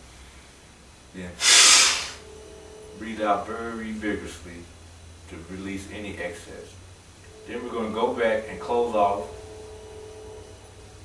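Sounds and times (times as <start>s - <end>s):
man exhaling through nose: 1.4s - 2.2s.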